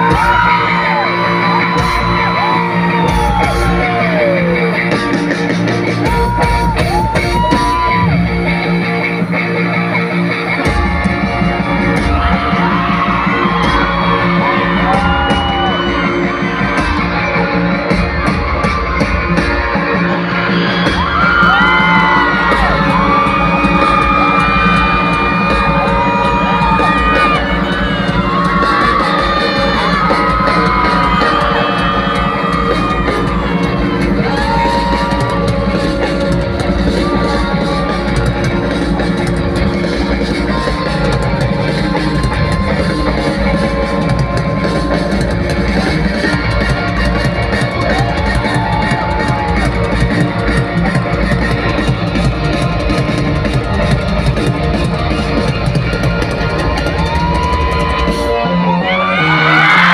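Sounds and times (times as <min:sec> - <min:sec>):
crowd yelling and cheering: 0:00.0 - 0:59.9
live pop-rock band: 0:00.0 - 0:59.9.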